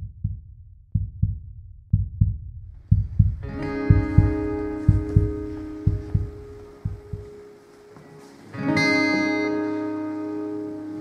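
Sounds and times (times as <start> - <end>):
heartbeat thumps: 0.0 - 7.4.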